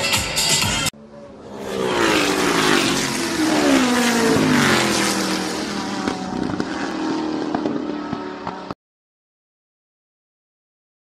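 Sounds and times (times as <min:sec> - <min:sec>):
car engine running: 0:01.3 - 0:08.7.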